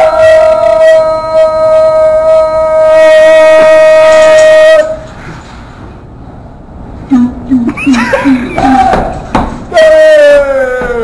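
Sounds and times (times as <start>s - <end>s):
man singing a long high note: 0.0s - 5.1s.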